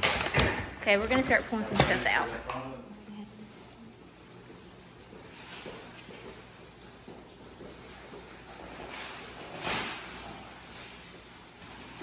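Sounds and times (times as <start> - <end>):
shuffling footsteps: 3.6 - 12.0.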